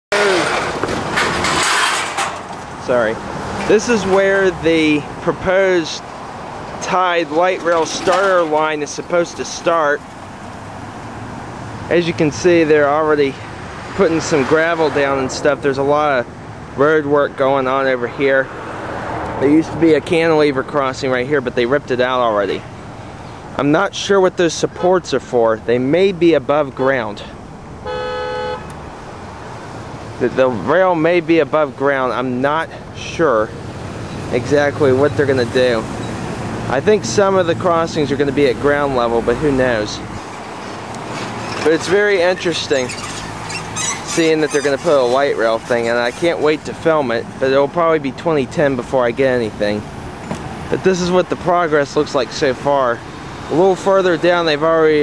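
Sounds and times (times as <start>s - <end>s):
road traffic passing: 0.0s - 55.0s
car horn toot: 27.8s - 28.8s.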